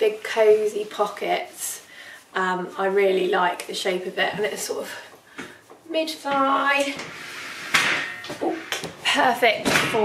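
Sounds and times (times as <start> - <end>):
clothing rustling: 0.0 - 10.0.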